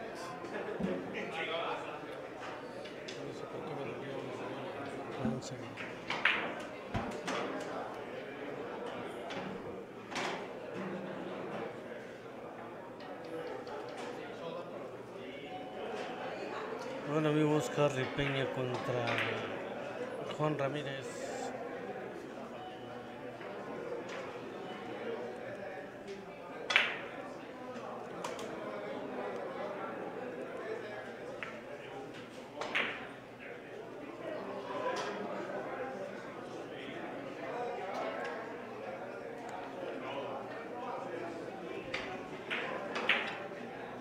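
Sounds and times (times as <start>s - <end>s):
murmur of voices: 0.0s - 44.0s.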